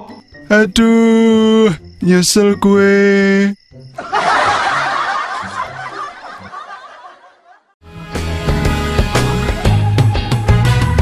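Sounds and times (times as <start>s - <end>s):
group of people laughing: 4.0s - 7.8s.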